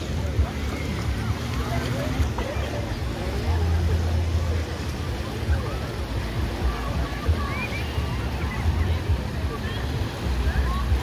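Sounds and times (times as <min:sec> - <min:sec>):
people chattering and calling: 0:00.0 - 0:11.0
small waves washing onto sand: 0:00.0 - 0:11.0.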